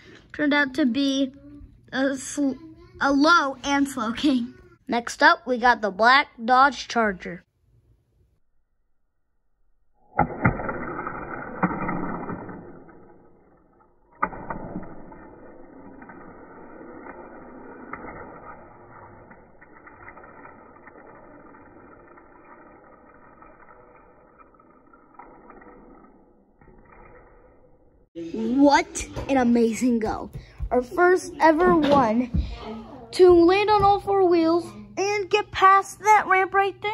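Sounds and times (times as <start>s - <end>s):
toy car clattering and rolling: 10.9s - 27.4s.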